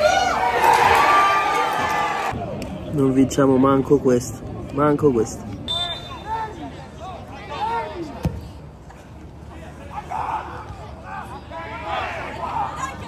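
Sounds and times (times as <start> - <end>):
players shouting: 0.0 - 2.5, 9.5 - 13.0.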